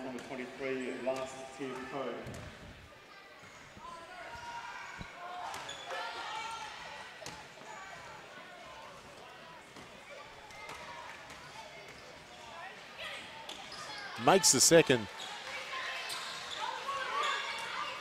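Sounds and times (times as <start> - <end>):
faint echoing voices: 14.2 - 15.2.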